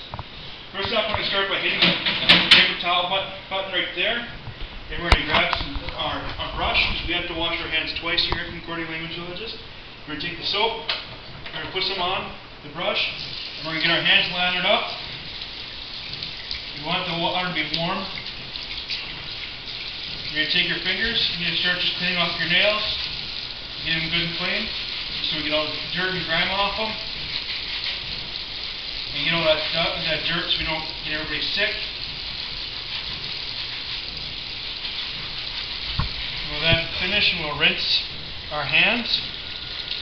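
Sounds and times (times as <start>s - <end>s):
tap water running: 0.0s - 40.0s.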